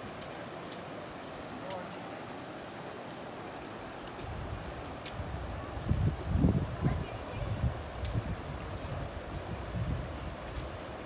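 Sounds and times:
stream rushing over rocks: 0.0s - 11.0s.

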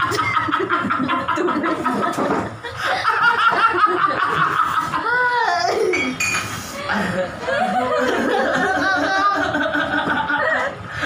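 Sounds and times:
people laughing: 0.0s - 11.0s.

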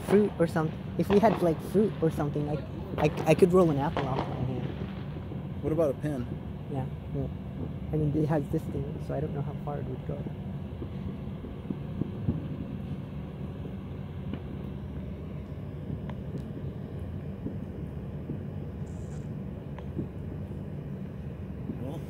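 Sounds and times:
low engine rumble: 0.0s - 22.0s.

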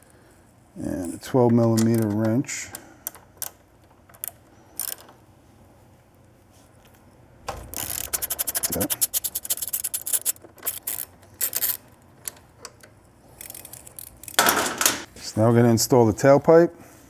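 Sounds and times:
hand ratchet clicking rapidly: 7.7s - 11.8s.

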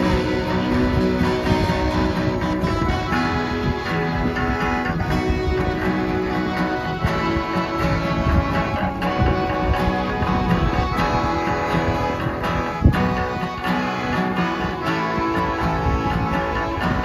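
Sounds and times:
accordion chords: 0.0s - 17.0s
strummed guitar: 0.0s - 17.0s.

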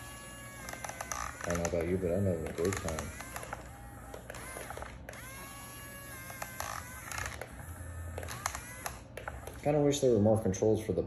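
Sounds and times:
small electric motors whining: 0.0s - 10.4s.

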